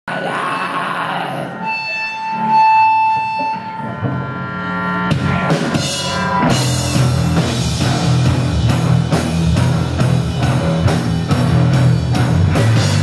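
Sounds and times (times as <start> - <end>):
live rock band: 1.1 - 13.0
drum and cymbal hits: 5.1 - 13.0.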